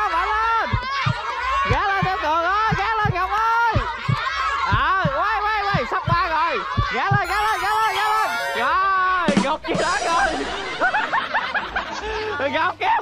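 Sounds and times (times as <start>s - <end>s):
music: 7.2s - 10.0s.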